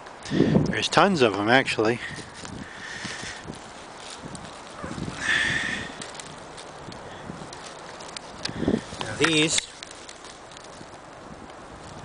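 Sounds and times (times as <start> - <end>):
wind noise: 0.0 - 12.0
footsteps in dry brush: 0.7 - 12.0.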